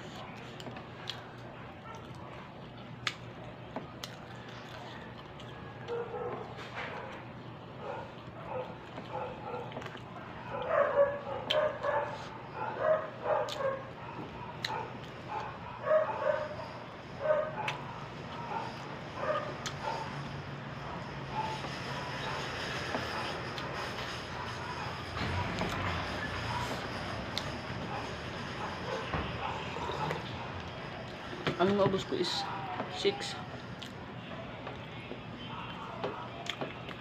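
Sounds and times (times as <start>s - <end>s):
dog barking: 5.9s - 7.2s, 7.8s - 9.8s, 10.4s - 20.2s, 20.9s - 22.4s, 27.8s - 30.5s.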